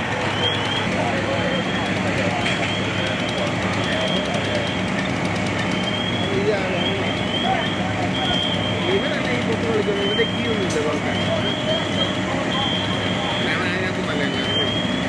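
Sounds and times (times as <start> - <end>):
distant voices: 0.0 - 15.0
fire truck engine humming: 0.0 - 15.0.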